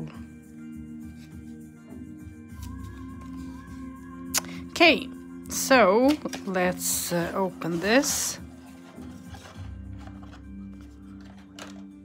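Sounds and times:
soft background music: 0:00.0 - 0:12.0
cards and paper booklet handled: 0:02.6 - 0:03.8, 0:06.0 - 0:12.0.

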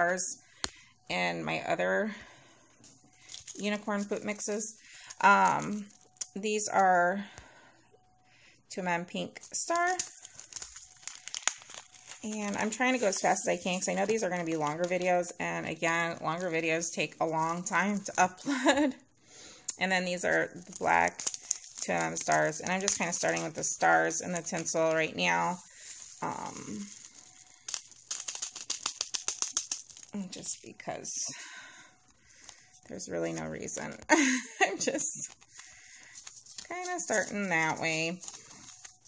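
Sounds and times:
plastic bag crinkling: 0:02.2 - 0:07.1, 0:08.9 - 0:18.9, 0:19.7 - 0:39.0
glitter rattling into jar: 0:20.6 - 0:30.6.

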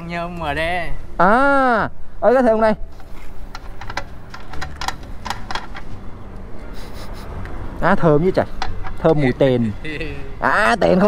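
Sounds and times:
metallic clicks and taps: 0:03.5 - 0:06.5.

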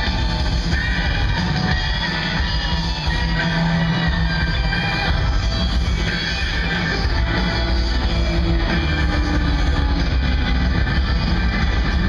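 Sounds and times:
electric guitar: 0:00.0 - 0:12.0
live rock band: 0:00.0 - 0:12.0.

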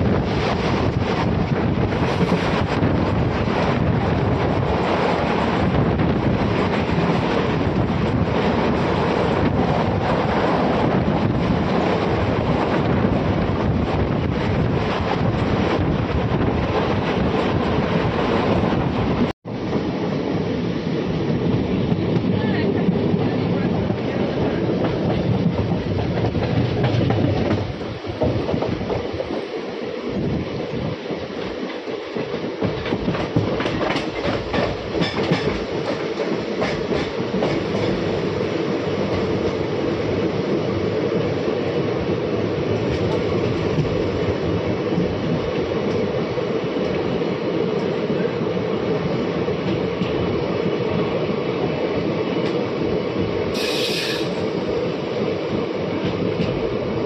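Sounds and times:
train coach rumble: 0:00.0 - 0:57.0
wheels clicking over rail joints: 0:31.4 - 0:38.2.

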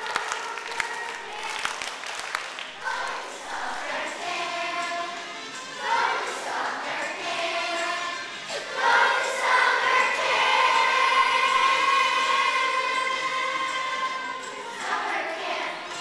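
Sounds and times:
children's choir singing: 0:00.0 - 0:16.0.

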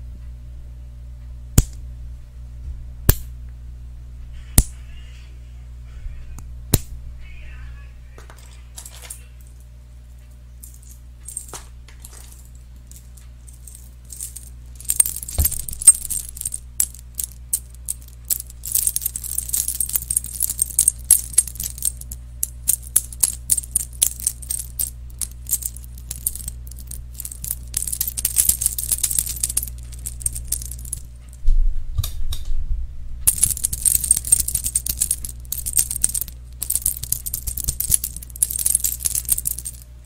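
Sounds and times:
low electrical hum: 0:00.0 - 0:40.0
metal trinket clicking and jingling: 0:08.4 - 0:09.6, 0:10.6 - 0:31.3, 0:33.3 - 0:39.8.

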